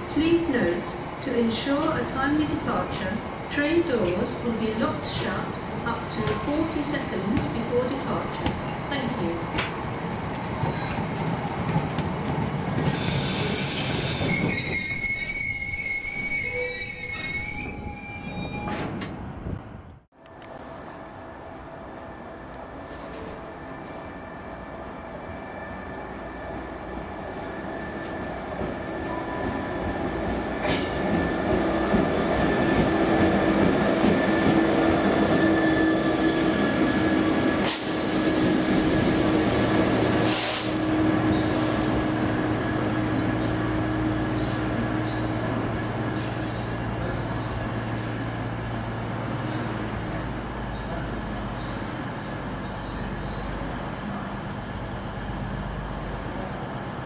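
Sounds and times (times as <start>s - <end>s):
freight train rumble and clatter: 0.0s - 21.0s, 26.1s - 57.0s
train wheels squealing: 10.6s - 11.1s, 12.9s - 19.2s
diesel locomotive low hum: 19.1s - 57.0s.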